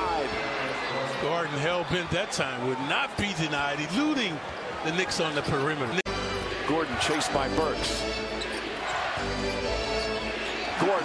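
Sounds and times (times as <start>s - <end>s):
arena music: 6.1s - 11.0s.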